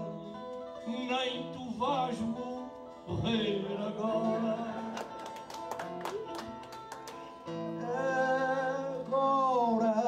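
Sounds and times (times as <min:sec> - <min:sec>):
man singing: 0:00.0 - 0:05.2, 0:07.6 - 0:10.0
acoustic guitar: 0:00.0 - 0:10.0.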